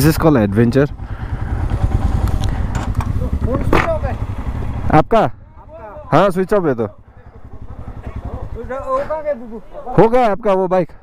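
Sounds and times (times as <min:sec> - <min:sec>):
men's voices: 0:00.0 - 0:11.0
motorcycle engine idling: 0:00.0 - 0:11.0
men laughing: 0:06.8 - 0:10.1.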